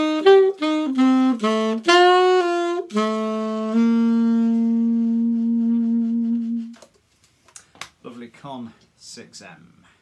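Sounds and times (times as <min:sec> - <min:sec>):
alto saxophone low note: 0:00.0 - 0:06.8.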